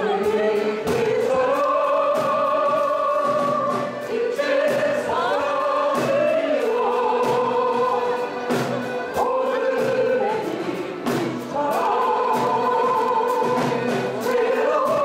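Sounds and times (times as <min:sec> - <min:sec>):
accordion ensemble playing chords: 0:00.0 - 0:15.0
players singing: 0:00.0 - 0:15.0.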